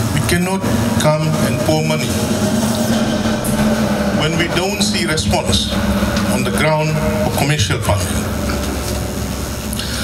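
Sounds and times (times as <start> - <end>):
motor humming: 0.7 - 10.0.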